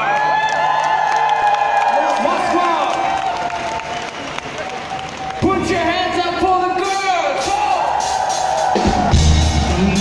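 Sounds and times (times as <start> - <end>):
concert crowd cheering and screaming: 0.0 - 10.0.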